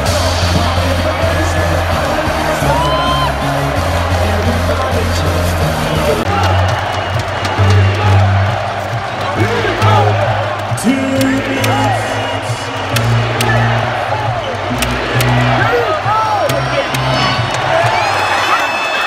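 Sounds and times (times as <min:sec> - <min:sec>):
music with deep bass line: 0:00.0 - 0:17.9
crowd noise: 0:00.0 - 0:19.0.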